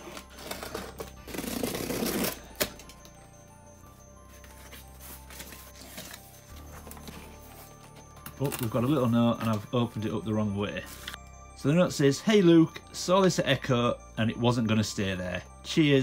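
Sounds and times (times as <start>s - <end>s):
quiet background music: 0.0s - 16.0s.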